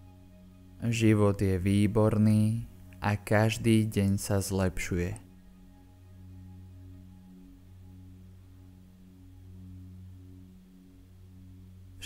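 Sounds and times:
meditation music drone: 0:00.0 - 0:12.0.

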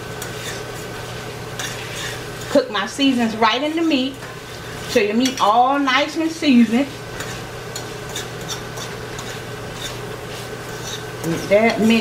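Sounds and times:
meat sizzling in a frying pan: 0:00.0 - 0:12.0
metal utensil scraping a pan: 0:00.2 - 0:00.8, 0:01.5 - 0:02.6, 0:07.1 - 0:12.0.

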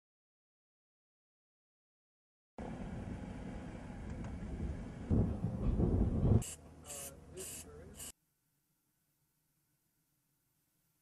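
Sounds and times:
low rumbling noise: 0:02.6 - 0:06.9.

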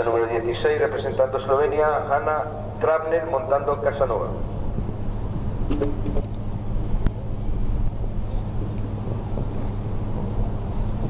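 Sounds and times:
constant low hum: 0:00.0 - 0:11.0
low outdoor rumble: 0:00.0 - 0:11.0.

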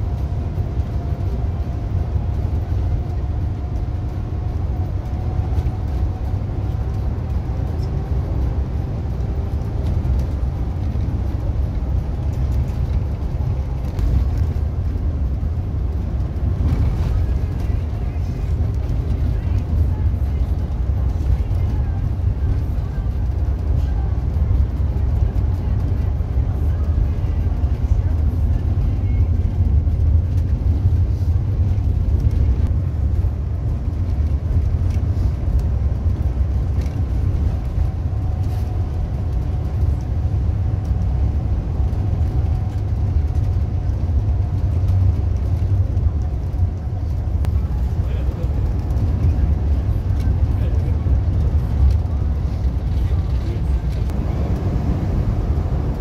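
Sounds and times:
diesel engine rumble: 0:00.0 - 0:56.0
tyres on road: 0:00.0 - 0:56.0.

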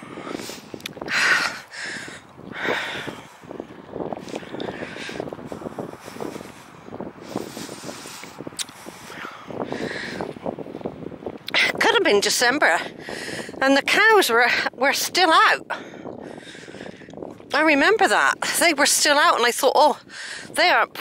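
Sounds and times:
person breathing: 0:00.0 - 0:03.5, 0:04.2 - 0:10.3, 0:12.9 - 0:13.6, 0:20.1 - 0:20.5.

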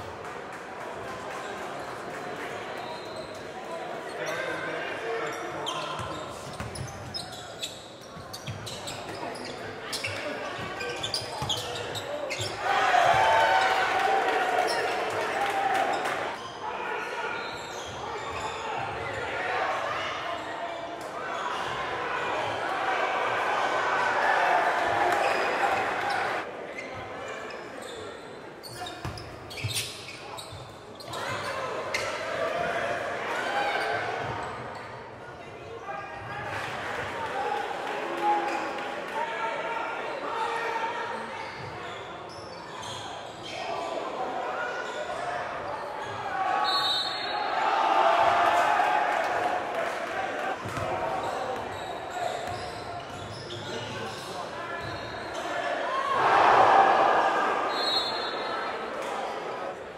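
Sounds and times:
players and spectators calling out: 0:02.7 - 0:59.9.

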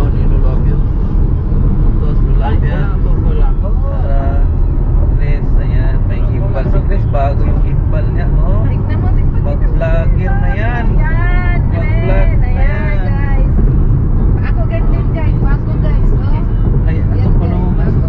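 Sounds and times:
car road and engine rumble: 0:00.0 - 0:18.0.

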